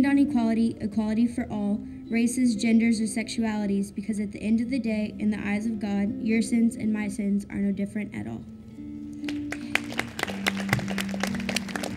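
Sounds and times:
hand clapping: 0:09.2 - 0:11.9.

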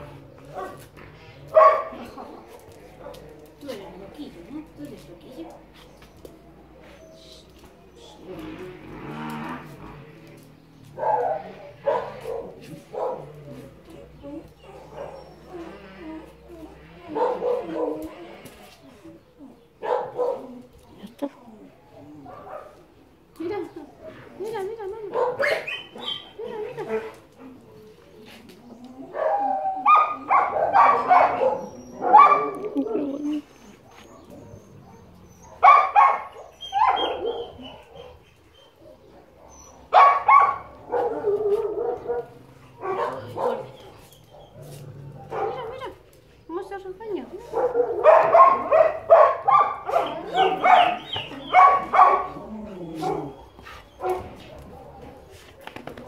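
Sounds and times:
dogs barking: 0:00.0 - 0:03.4, 0:10.6 - 0:13.8, 0:14.5 - 0:15.8, 0:17.0 - 0:18.2, 0:19.7 - 0:20.7, 0:22.1 - 0:23.1, 0:25.1 - 0:27.1, 0:29.1 - 0:33.0, 0:33.9 - 0:46.0, 0:47.4 - 0:55.3.

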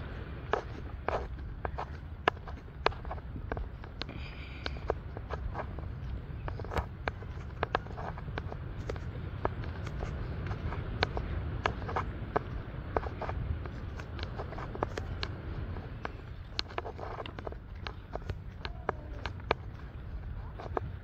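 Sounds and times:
footsteps crunching on sandy dirt: 0:00.0 - 0:21.0
steady low rumble: 0:00.0 - 0:21.0.

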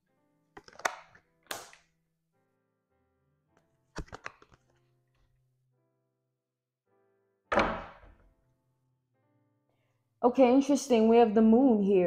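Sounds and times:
quiet background music: 0:00.0 - 0:06.3, 0:06.9 - 0:12.0.

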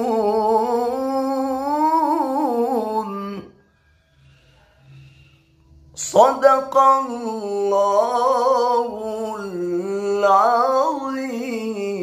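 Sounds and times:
man reciting melodically: 0:00.0 - 0:03.6, 0:05.9 - 0:12.0.

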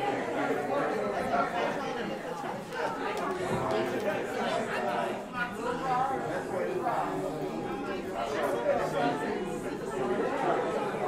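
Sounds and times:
indistinct chatter of people: 0:00.0 - 0:11.0.

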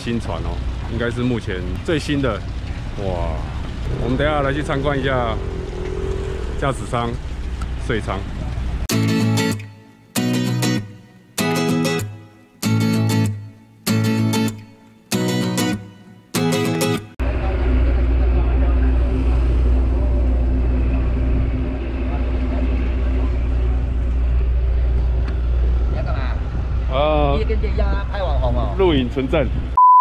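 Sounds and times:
low engine rumble: 0:00.0 - 0:08.9, 0:17.2 - 0:29.8
acoustic guitar strumming chords: 0:08.9 - 0:17.2.

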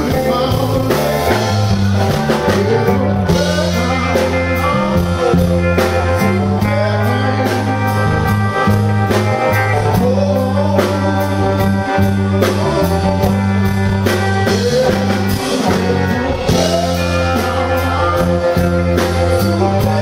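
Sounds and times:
blues-rock band playing: 0:00.0 - 0:20.0
man singing: 0:00.0 - 0:20.0.

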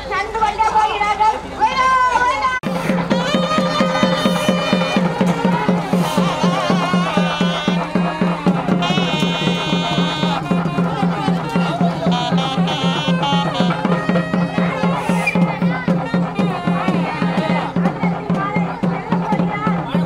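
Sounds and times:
fast regular drumming: 0:02.6 - 0:20.0.

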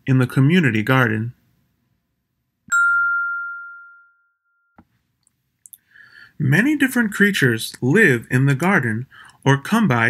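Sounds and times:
bell-like ding: 0:02.7 - 0:04.8.

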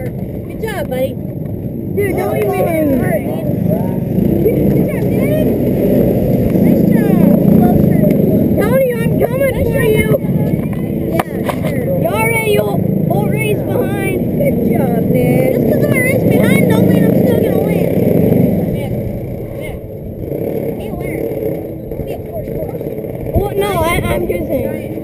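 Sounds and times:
kart engine idling: 0:00.0 - 0:25.0
children's voices: 0:01.8 - 0:25.0.

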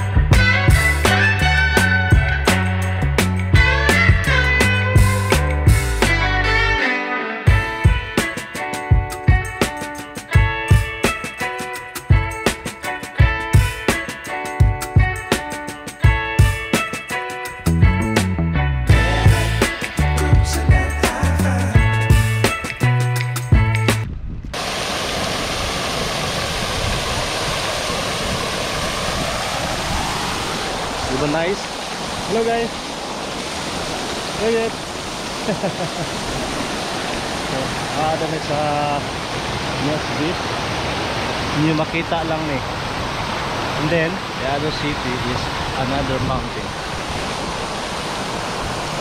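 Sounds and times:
background music with a beat: 0:00.0 - 0:24.1
fountain splashing: 0:24.6 - 0:49.0.

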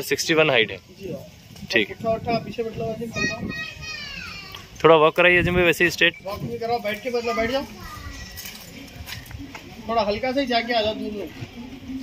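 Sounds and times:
children calling: 0:02.8 - 0:09.7.

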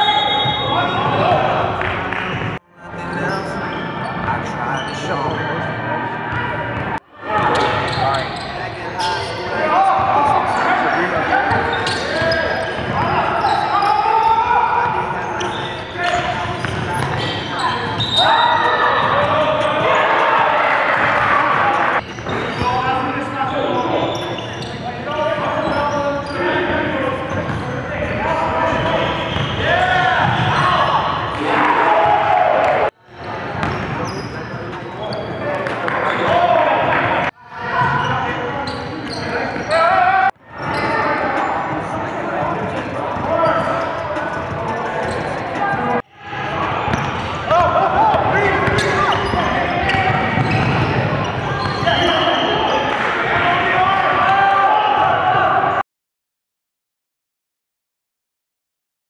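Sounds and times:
players shouting and chatter: 0:00.0 - 0:55.8.

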